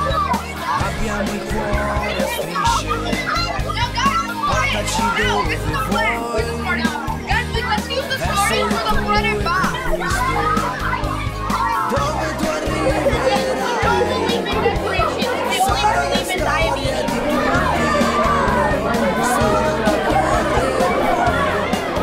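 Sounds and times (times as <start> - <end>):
children talking and calling out: 0.0 - 22.0.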